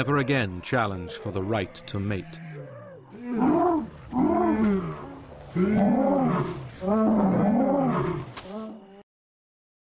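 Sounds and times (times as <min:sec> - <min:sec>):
deep dinosaur calls: 0:00.0 - 0:08.8.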